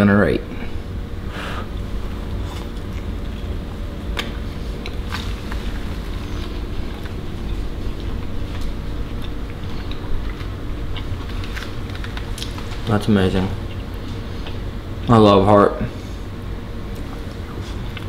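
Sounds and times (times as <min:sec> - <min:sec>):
low hum and rumble: 0:00.0 - 0:18.0.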